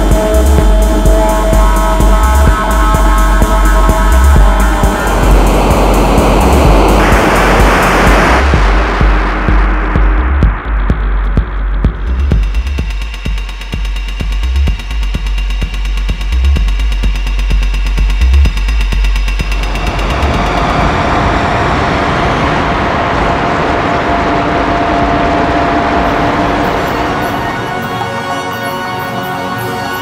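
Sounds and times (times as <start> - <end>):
fast ticking pulse: 0.0 - 21.2
heavy sub-bass: 0.0 - 27.8
noisy synth wash with held tone: 0.0 - 30.0.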